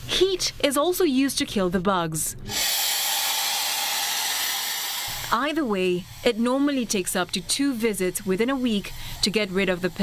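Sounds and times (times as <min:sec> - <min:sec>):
steam nozzle hissing: 0:02.5 - 0:10.0.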